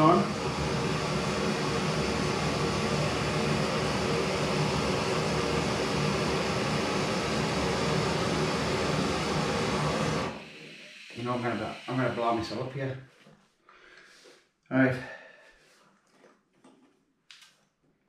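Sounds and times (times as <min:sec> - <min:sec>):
gas stove burner hissing: 0:00.0 - 0:12.8.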